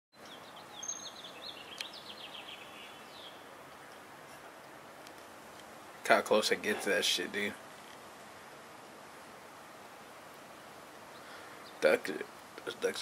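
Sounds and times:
faint outdoor background noise: 0.1s - 13.0s
small bird chirping: 0.2s - 4.0s.

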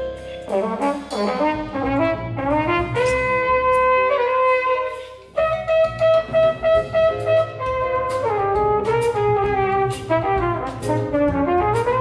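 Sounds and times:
big band playing jazz: 0.0s - 12.0s
trumpets and trombones: 0.4s - 12.0s.

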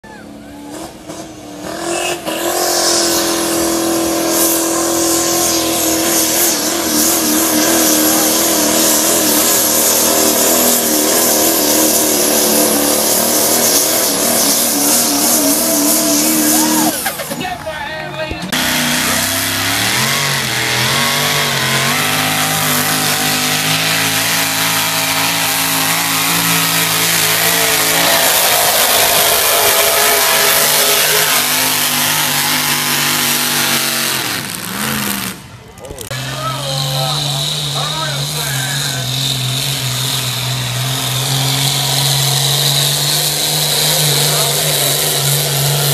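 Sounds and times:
engine revving hard: 0.6s - 17.3s, 18.5s - 45.9s.

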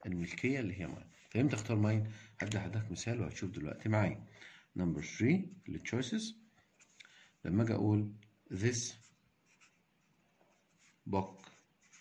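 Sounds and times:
marker pen scratching on paper: 6.6s - 7.0s, 8.9s - 12.0s.

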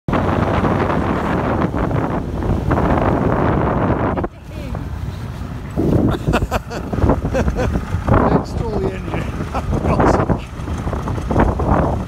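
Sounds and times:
water rushing past boat: 0.1s - 12.0s
wind buffeting microphone: 0.1s - 12.0s.

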